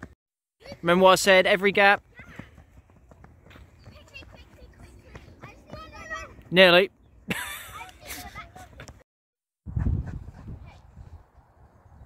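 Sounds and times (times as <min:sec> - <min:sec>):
child running footsteps: 0:00.0 - 0:06.6
distant children's voices: 0:02.0 - 0:06.5.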